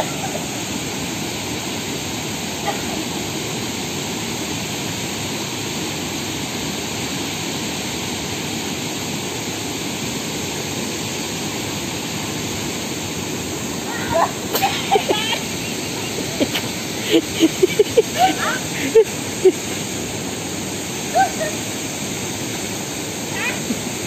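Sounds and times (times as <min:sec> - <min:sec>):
river water rushing over rocks: 0:00.0 - 0:24.0.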